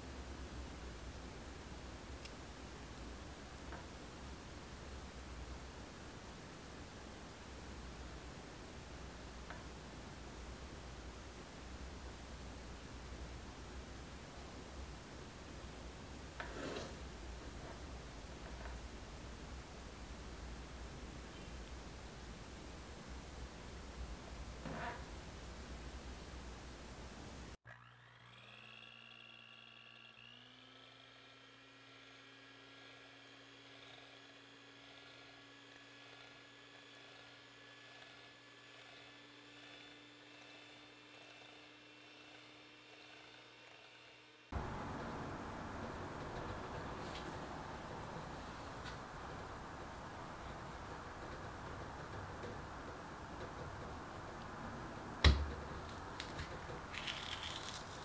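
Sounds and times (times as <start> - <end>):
electric hand mixer whine: 27.6 - 31.4.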